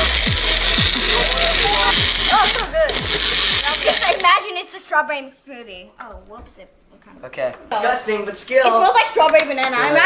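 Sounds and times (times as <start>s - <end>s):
blender motor running: 0.0s - 4.2s
children's voices and squeals: 1.1s - 4.8s.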